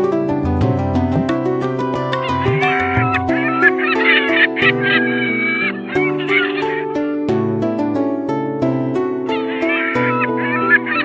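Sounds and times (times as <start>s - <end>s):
plucked guitar-like music: 0.0s - 11.0s
gulls calling: 0.6s - 7.2s, 9.3s - 11.0s.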